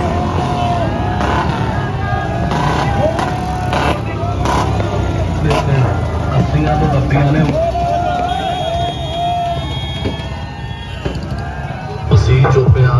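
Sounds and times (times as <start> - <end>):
crowd voices: 0.0 - 12.9
motorcycle and vehicle engines: 0.0 - 12.9.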